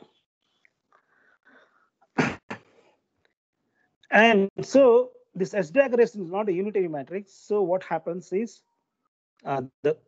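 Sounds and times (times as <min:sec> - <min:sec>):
man sneezing: 0:02.2 - 0:02.8.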